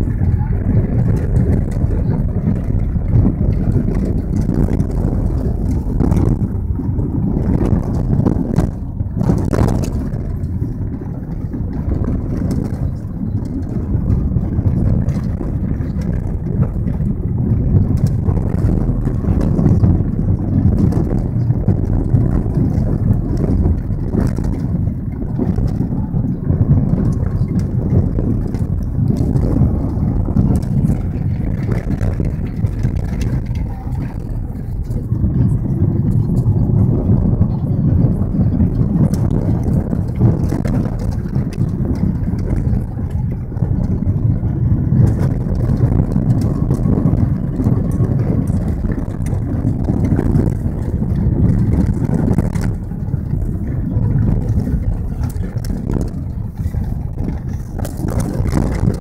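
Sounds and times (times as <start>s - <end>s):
tyres and engine rumbling: 0.0s - 59.0s.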